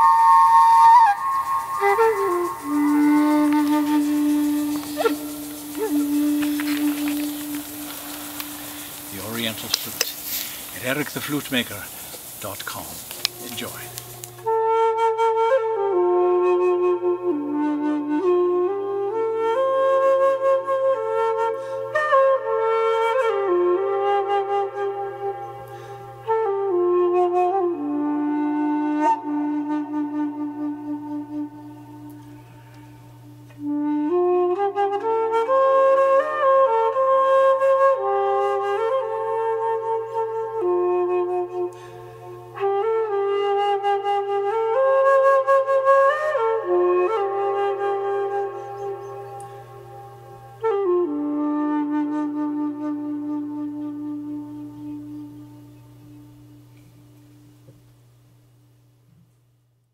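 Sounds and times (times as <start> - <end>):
bamboo flute melody: 0.0 - 57.8.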